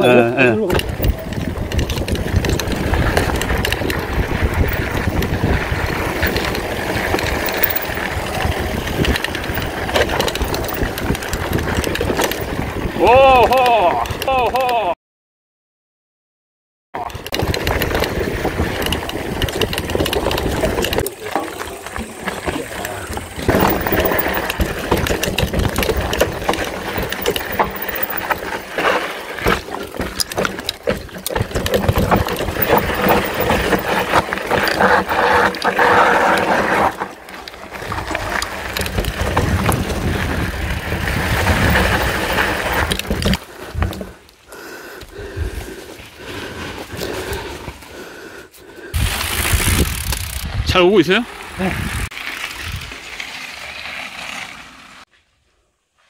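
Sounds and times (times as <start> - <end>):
mountain bike rattling: 0.0 - 14.8, 17.0 - 55.2
tyres crunching over dirt: 0.7 - 13.9, 17.1 - 48.0
wind buffeting microphone: 0.8 - 13.4, 37.9 - 44.0, 49.0 - 50.8.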